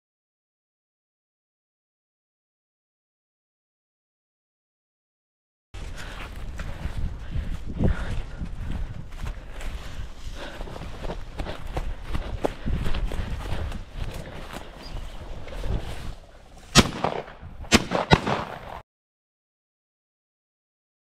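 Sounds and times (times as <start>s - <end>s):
footsteps through dry grass: 5.8s - 18.8s.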